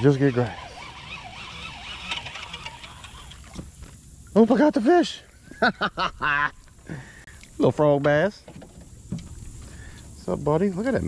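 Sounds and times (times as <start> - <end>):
fishing reel ticking clicks: 0.0 - 3.6.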